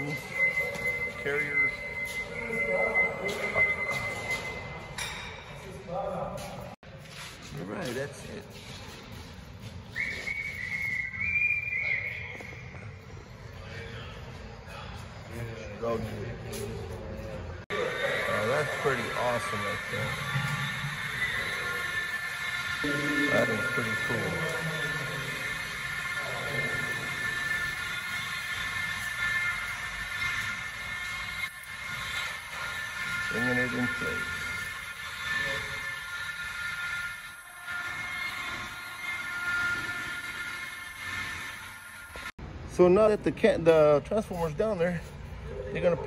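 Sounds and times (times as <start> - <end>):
machine skate rollers whining: 17.8 - 42.3.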